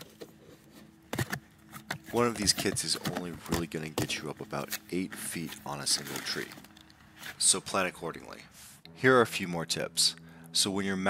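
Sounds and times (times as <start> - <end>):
cardboard taps and scrapes: 0.0 - 4.8.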